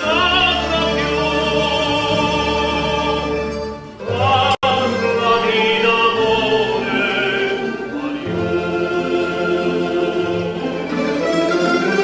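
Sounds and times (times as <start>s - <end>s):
man singing: 0.0s - 10.5s
accordion: 6.4s - 12.0s.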